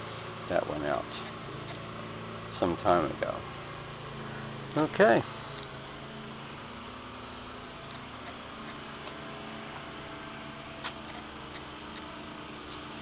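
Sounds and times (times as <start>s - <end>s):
faint background hum: 0.0s - 13.0s.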